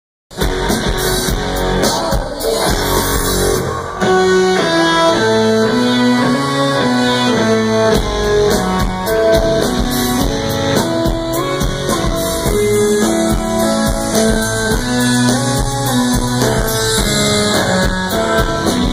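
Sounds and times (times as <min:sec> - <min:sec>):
drums: 0:00.3 - 0:18.9
electric guitar riff: 0:00.3 - 0:18.9.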